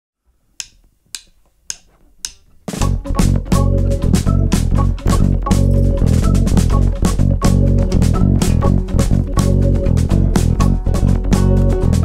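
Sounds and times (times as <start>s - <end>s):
drumsticks clicked together: 0.6s - 2.5s.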